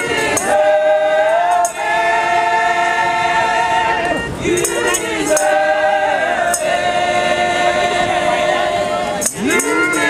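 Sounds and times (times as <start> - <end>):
group singing gospel song: 0.0 - 10.0.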